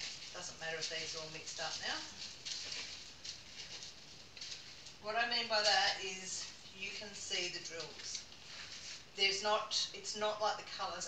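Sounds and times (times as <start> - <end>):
plastic bags rustling and crinkling: 0.0 - 9.9.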